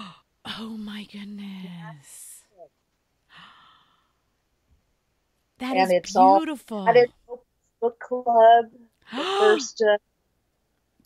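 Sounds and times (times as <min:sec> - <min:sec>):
woman sighing: 0:09.1 - 0:09.7.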